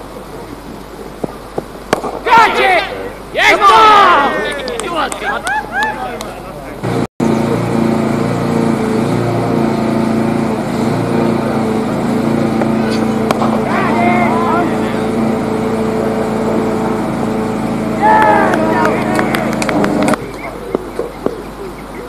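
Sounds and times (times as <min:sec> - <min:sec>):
motor running: 0:00.0 - 0:22.0
voices calling: 0:00.0 - 0:22.0.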